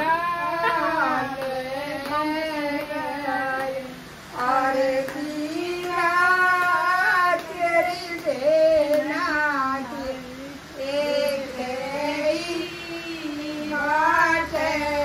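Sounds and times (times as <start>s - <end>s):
high voice singing slow melody: 0.0s - 15.0s.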